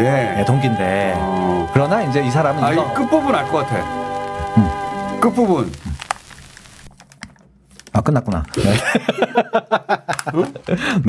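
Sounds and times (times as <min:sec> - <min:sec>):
faint hiss: 0:01.4 - 0:07.0.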